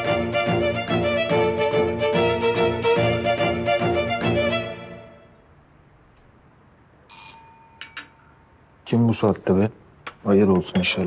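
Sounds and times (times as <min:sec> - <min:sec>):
doorbell ringing: 0:07.1 - 0:08.4.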